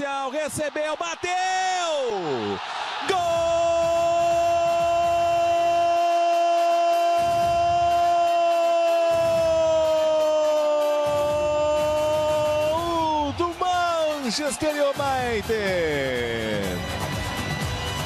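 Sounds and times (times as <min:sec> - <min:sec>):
commentator shouting goal call: 0:00.0 - 0:16.8.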